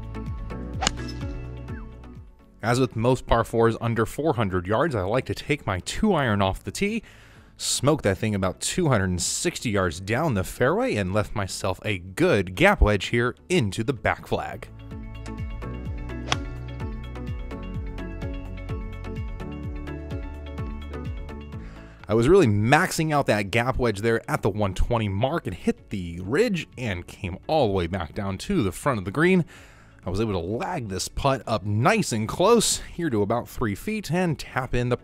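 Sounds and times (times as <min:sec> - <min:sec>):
background music with sliding bass: 0:00.0 - 0:02.8, 0:12.8 - 0:23.2
golf club striking ball: 0:00.8 - 0:01.4, 0:16.2 - 0:16.6.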